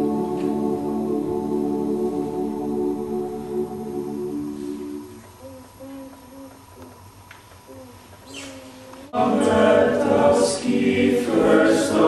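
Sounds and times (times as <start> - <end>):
mixed choir singing: 0.0 - 5.2, 9.1 - 12.0.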